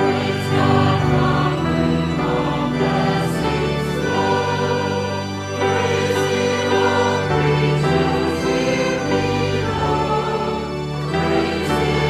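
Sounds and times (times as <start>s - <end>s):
church choir singing a hymn: 0.0s - 12.0s.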